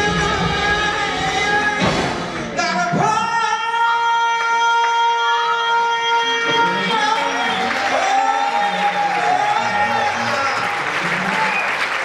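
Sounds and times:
gospel band hits: 0:00.0 - 0:12.0.

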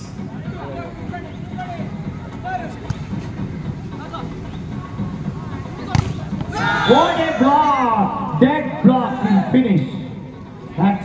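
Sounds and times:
crowd murmur: 0:00.0 - 0:11.0
ball slapping off a block: 0:05.9 - 0:06.3.

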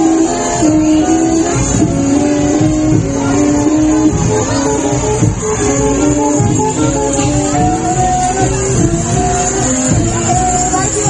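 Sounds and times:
low uneven beats: 0:00.0 - 0:11.0
plucked-string melody: 0:00.0 - 0:11.0.

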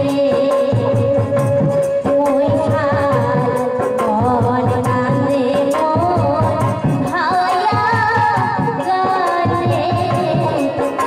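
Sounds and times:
woman singing folk song: 0:00.0 - 0:01.4, 0:02.1 - 0:11.0.

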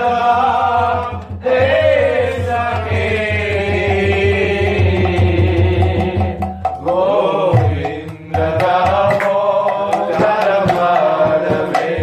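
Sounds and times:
low rhythmic pulse: 0:00.0 - 0:12.0
voices chanting a mantra: 0:00.0 - 0:12.0.

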